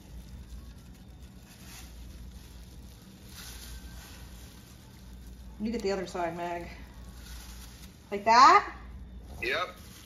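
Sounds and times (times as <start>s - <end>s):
plastic gloves rustling: 0.0s - 10.0s
steady low hum: 0.0s - 10.0s.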